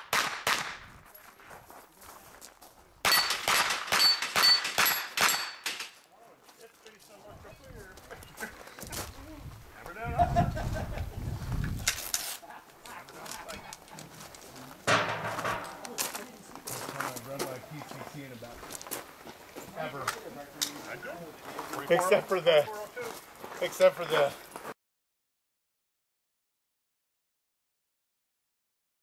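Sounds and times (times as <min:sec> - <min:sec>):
sharp knocks: 0:14.9 - 0:16.0
people talking indistinctly: 0:19.6 - 0:24.5.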